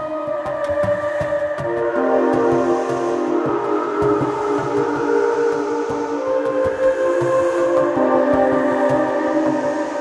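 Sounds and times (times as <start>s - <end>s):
synth pads: 0.0s - 10.0s.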